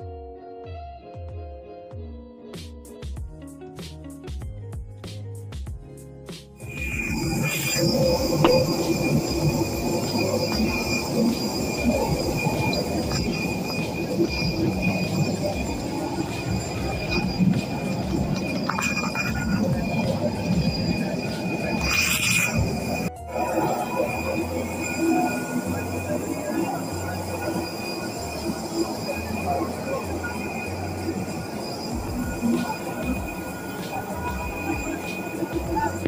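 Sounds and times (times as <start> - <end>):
background music with bass line: 0.0 - 7.3
jet airliner whining: 6.6 - 36.0
murmur of passengers talking: 6.6 - 36.0.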